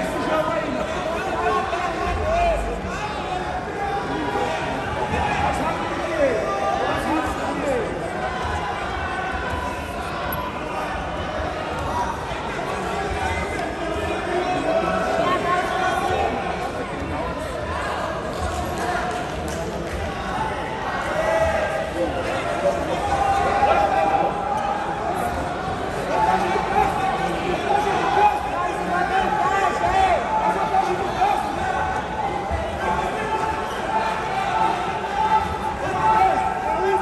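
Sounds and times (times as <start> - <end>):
arena noise: 0.0 - 37.0
people calling out in a hall: 0.0 - 37.0.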